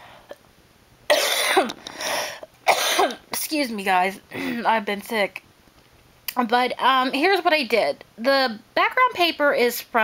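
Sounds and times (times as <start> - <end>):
woman coughing: 1.1 - 1.8, 2.7 - 3.2.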